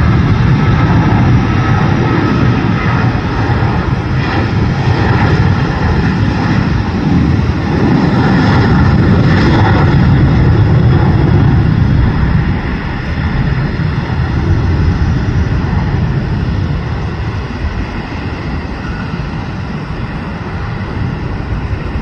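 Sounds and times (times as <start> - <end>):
jet engine roar at takeoff: 0.0 - 22.0.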